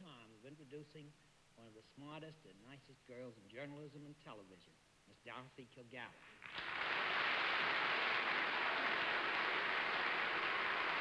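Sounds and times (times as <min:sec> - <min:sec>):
audience applauding: 0:06.4 - 0:11.0.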